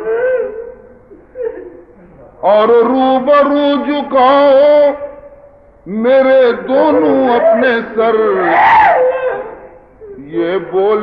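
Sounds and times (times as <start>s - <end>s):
man chanting: 2.4s - 5.3s, 5.9s - 8.6s.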